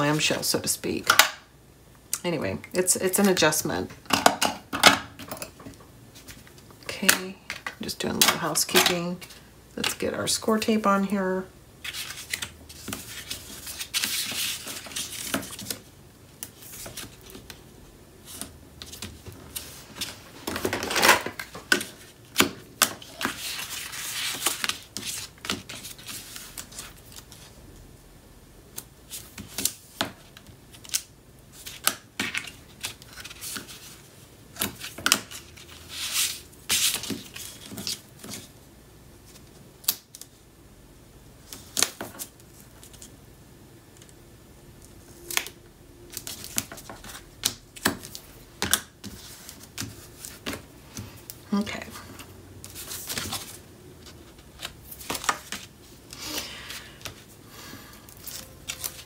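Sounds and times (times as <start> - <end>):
paper and tape liner rustling: 18.2 - 27.4.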